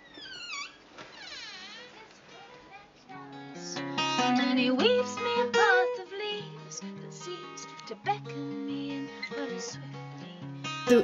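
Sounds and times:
door hinges creaking: 0:00.0 - 0:02.0.

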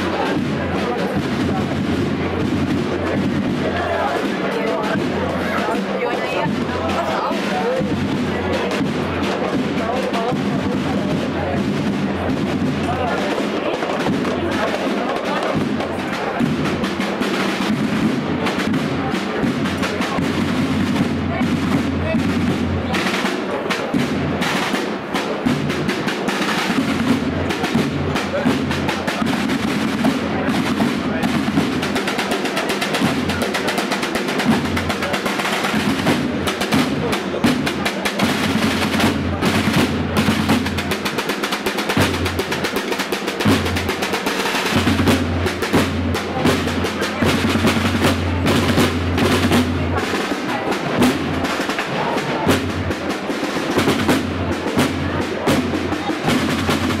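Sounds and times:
marching snare drums: 0:00.0 - 0:57.0.

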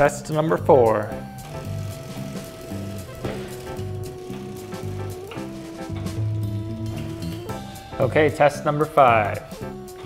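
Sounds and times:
background music with pulsing bass: 0:00.0 - 0:10.0.

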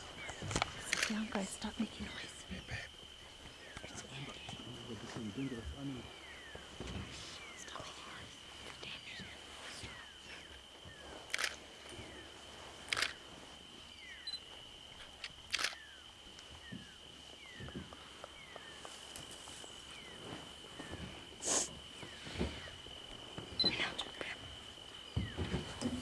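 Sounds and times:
high insect trill: 0:00.0 - 0:26.0
sharp cracks: 0:12.9 - 0:13.2.

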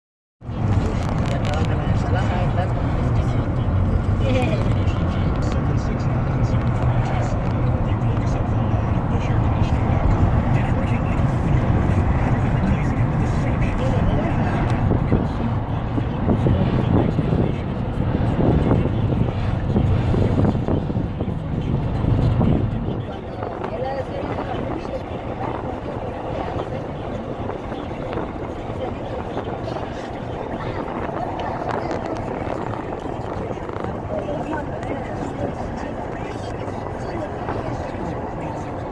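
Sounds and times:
car driving road noise: 0:00.4 - 0:38.9
faint voice: 0:00.5 - 0:38.9.

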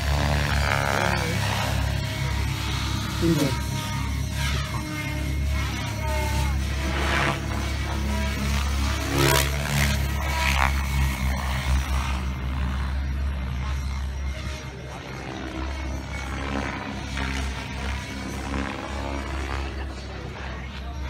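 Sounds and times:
model helicopter rotor: 0:00.0 - 0:21.0.

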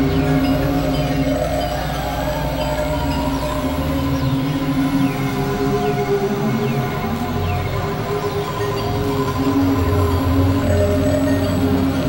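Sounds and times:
electronic synthesizer drone music: 0:00.0 - 0:12.0.

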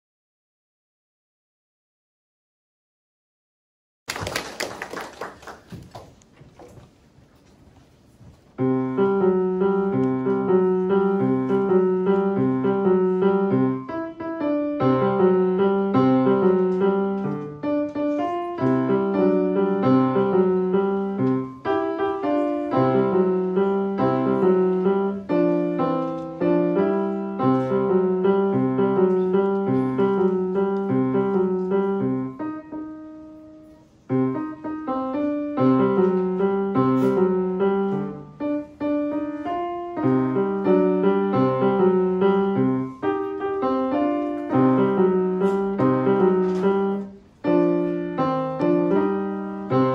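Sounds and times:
boogie-woogie piano playing: 0:08.6 - 0:49.9.

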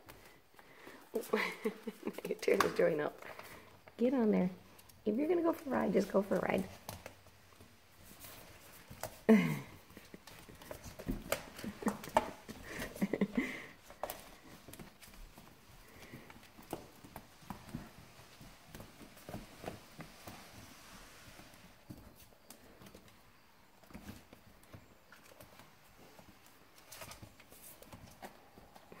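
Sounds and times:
puppy claws on floorboards: 0:01.3 - 0:29.0.

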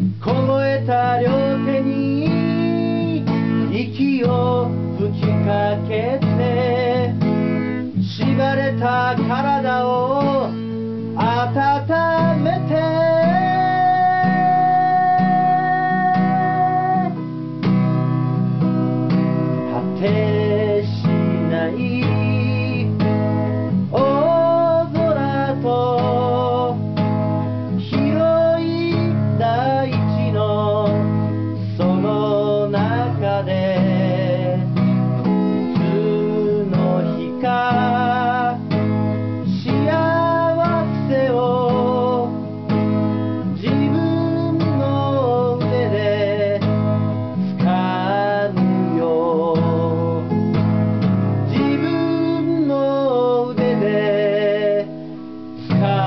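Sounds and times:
person singing a ballad: 0:00.0 - 0:17.5, 0:19.5 - 0:50.5, 0:51.4 - 0:56.0
acoustic guitar strumming: 0:00.0 - 0:56.0.

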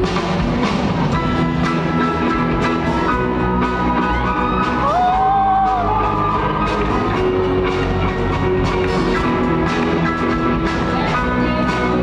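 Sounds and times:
live rock band playing loudly: 0:00.0 - 0:12.0.

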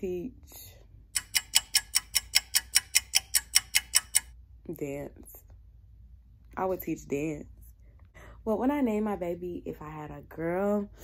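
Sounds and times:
fast clock-like ticking: 0:01.1 - 0:04.3.

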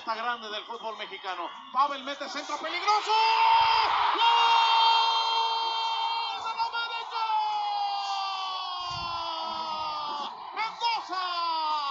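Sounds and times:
stadium crowd cheering: 0:00.0 - 0:11.9.

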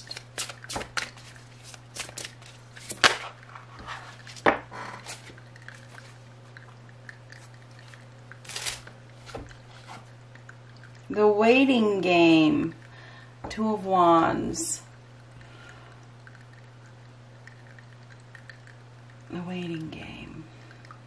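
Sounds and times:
cards being shuffled: 0:00.0 - 0:05.3, 0:08.4 - 0:10.0
faint steady hum: 0:00.0 - 0:21.0.

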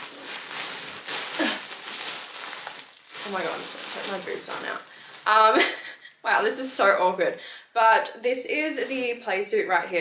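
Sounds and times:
bedding rustling: 0:00.0 - 0:05.8
plastic bag crinkling: 0:00.0 - 0:05.8.

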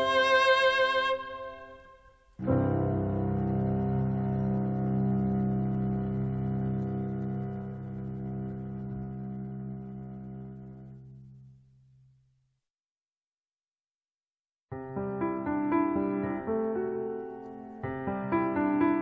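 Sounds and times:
cello and piano music: 0:00.0 - 0:01.8, 0:02.4 - 0:11.4.

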